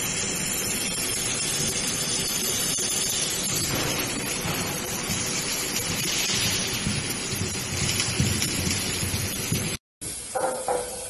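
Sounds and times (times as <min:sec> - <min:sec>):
laser welding crackling hiss: 0:00.0 - 0:11.0.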